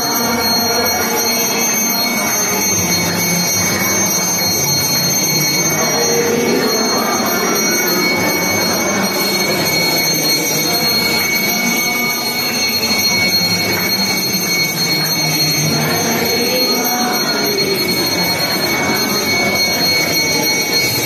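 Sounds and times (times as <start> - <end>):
murmur of voices: 0.0 - 21.0
temple bells ringing: 0.0 - 21.0.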